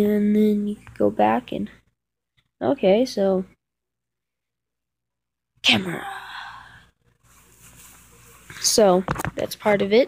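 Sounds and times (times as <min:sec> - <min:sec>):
person sighing: 0:05.7 - 0:06.9.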